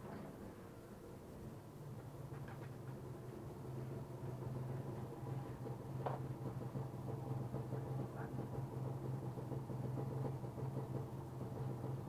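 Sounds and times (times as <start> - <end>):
low electric hum: 0.0 - 12.0.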